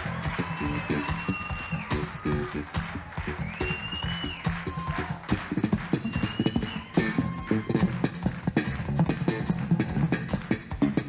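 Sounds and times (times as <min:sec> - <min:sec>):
slapped bass guitar: 0:00.0 - 0:11.0
high whistle-like tone: 0:00.4 - 0:02.1, 0:03.3 - 0:04.9, 0:06.0 - 0:07.3.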